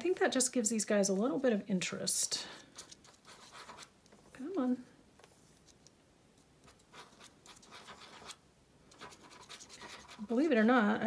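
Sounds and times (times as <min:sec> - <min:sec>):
scratchy strokes on paper: 0:02.6 - 0:04.5, 0:06.6 - 0:10.5
glue bottle scratching on paper: 0:06.6 - 0:10.4.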